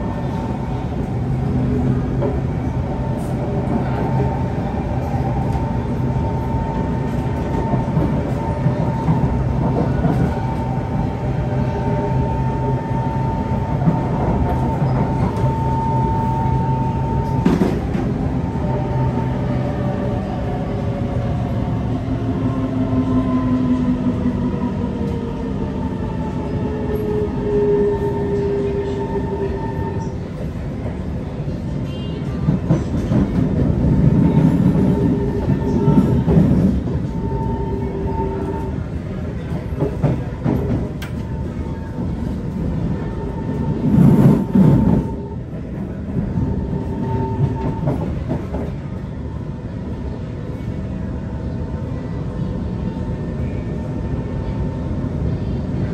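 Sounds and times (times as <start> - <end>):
train car rumbling: 0.0 - 55.9.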